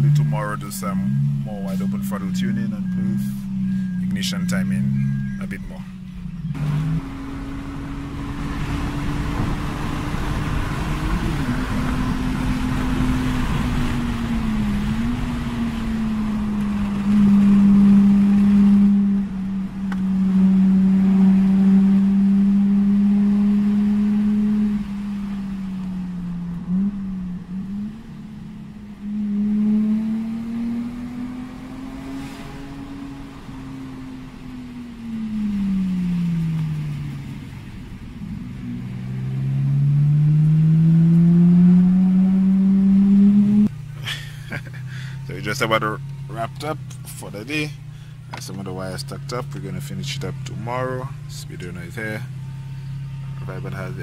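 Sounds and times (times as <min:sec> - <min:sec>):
car engine from inside cabin: 0:00.0 - 0:54.0.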